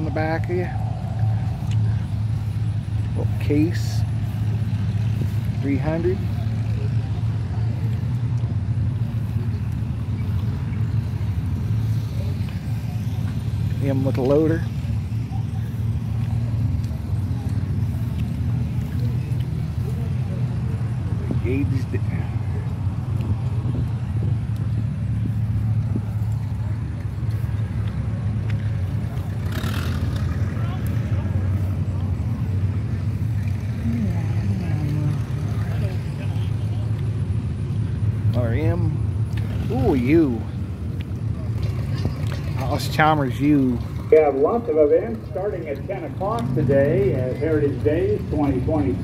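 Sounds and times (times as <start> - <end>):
low rumble: 0.0 - 19.9
faint distant voices: 0.0 - 49.0.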